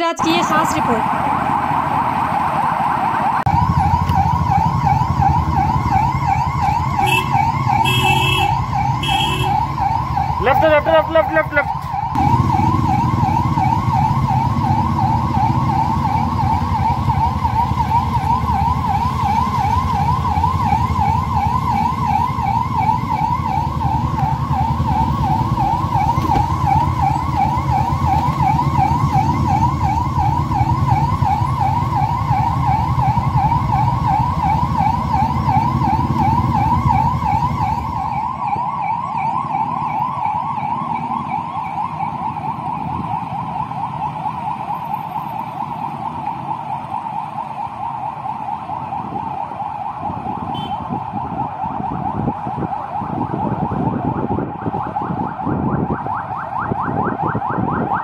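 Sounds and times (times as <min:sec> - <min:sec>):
motorcycle engines rumbling: 0:00.0 - 0:58.0
police siren yelping: 0:00.0 - 0:58.0.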